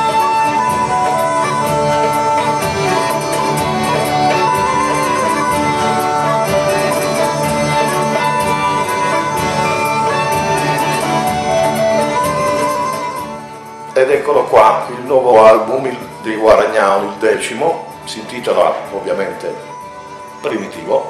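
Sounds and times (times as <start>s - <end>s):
bagpipe drone and melody: 0.0s - 21.0s
folk band music: 0.0s - 21.0s.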